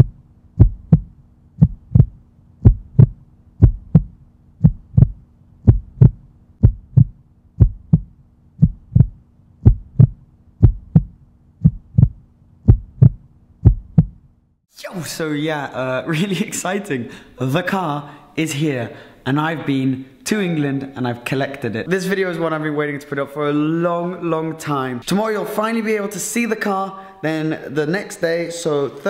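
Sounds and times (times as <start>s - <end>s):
heartbeat double thump: 0.0s - 14.3s.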